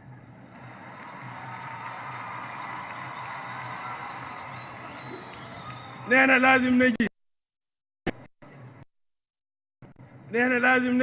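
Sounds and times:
crowd cheering and applauding: 0:00.5 - 0:06.8
faint high whistle: 0:02.5 - 0:06.0.

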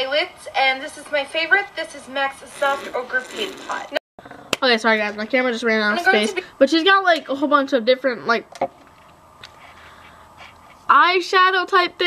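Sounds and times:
girl's voice: 0:00.0 - 0:04.0, 0:04.6 - 0:08.4, 0:10.9 - 0:12.0.

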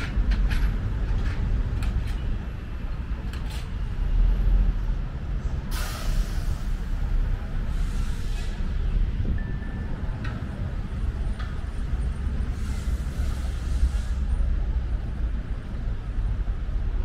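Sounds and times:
vehicles rumbling: 0:00.0 - 0:17.0
loud hiss: 0:05.7 - 0:07.1.

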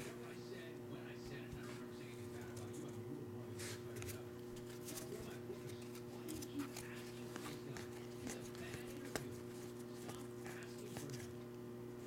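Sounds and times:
low electrical hum: 0:00.0 - 0:12.0
trading cards flipping: 0:03.9 - 0:11.3.

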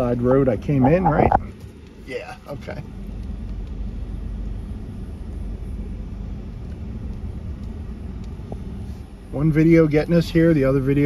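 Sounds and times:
pickup engine and tyre rumble: 0:00.0 - 0:11.0.

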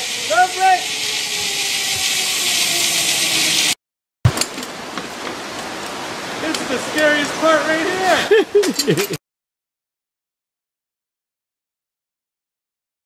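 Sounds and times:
outdoor background noise: 0:00.0 - 0:09.2
zipline trolley on cable: 0:00.0 - 0:09.2.

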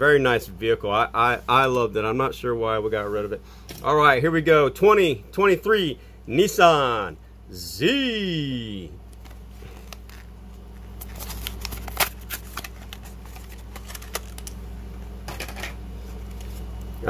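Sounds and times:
plastic packaging crackling: 0:09.1 - 0:14.6.

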